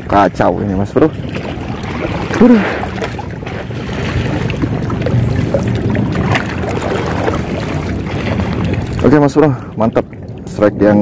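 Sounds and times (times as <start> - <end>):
wind buffeting microphone: 0.0 - 11.0
small waves lapping on rocks: 1.0 - 10.9.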